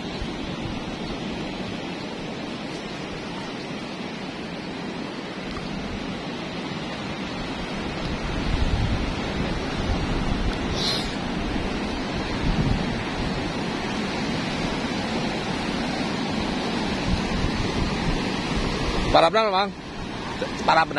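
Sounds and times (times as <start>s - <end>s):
wind on microphone: 0.0s - 19.2s
surf breaking on rocky shore: 0.0s - 20.9s.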